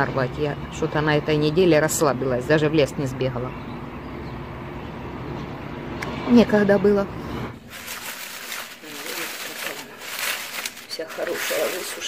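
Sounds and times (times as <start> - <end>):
dried leaves rustling and crackling: 7.6 - 12.0.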